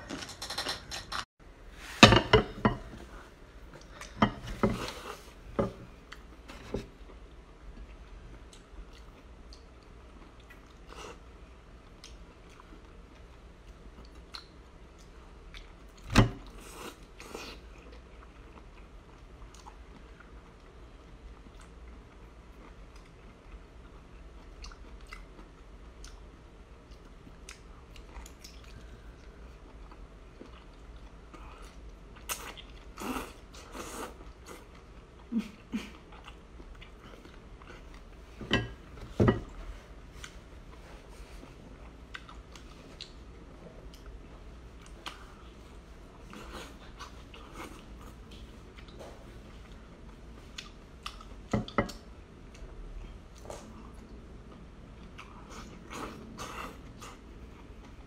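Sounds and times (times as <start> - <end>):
wet chewing sounds: 11.8 - 16.0, 16.6 - 38.2.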